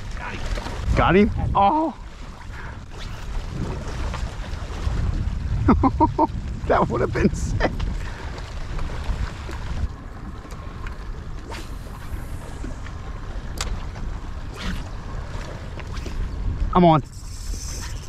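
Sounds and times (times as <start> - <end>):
water lapping against boat hull: 0.0 - 18.0
wind buffeting microphone: 0.0 - 18.0.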